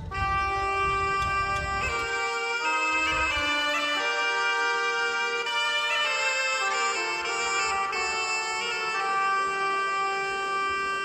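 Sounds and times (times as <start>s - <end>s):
bagpipe music: 0.0s - 11.0s.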